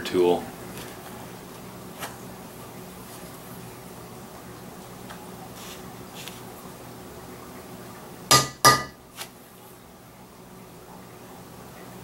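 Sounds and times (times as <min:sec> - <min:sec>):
metal mallet striking stamping tool: 0:08.3 - 0:08.9.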